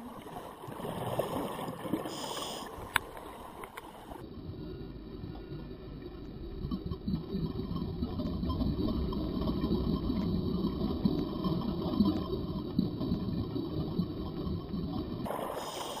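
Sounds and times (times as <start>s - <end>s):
underwater exhaust bubbles gurgling: 0.0s - 16.0s.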